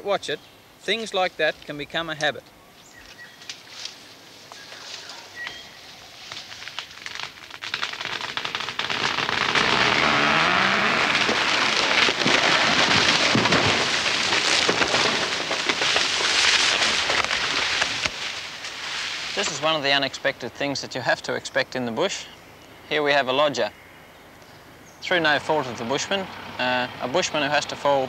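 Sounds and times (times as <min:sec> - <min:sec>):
tree foliage rustling and crackling: 0:00.0 - 0:28.0.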